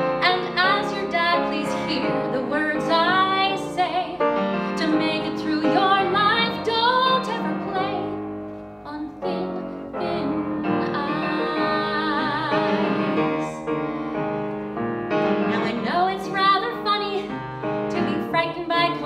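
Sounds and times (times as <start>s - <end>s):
piano accompaniment: 0.0s - 19.0s
woman singing: 0.2s - 8.2s, 8.8s - 13.6s, 15.5s - 19.0s.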